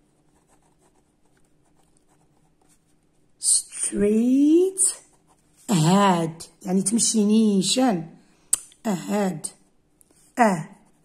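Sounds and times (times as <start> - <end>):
pen scratching on paper: 0.0 - 3.2.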